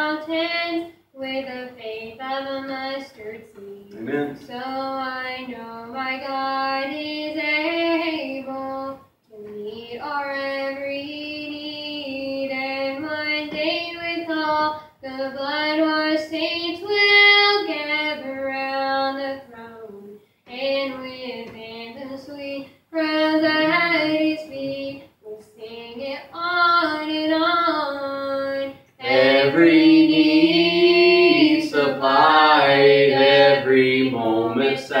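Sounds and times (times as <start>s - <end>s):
woman singing gospel song: 0.0s - 35.0s.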